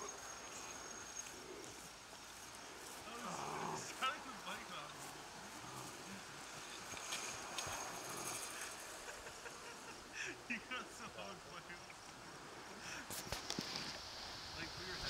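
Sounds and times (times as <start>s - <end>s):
distant voices talking and calling: 0.0s - 13.5s.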